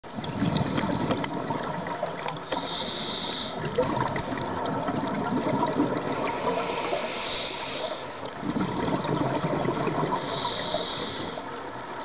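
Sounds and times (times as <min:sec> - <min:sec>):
underwater bubbling: 0:00.0 - 0:12.0.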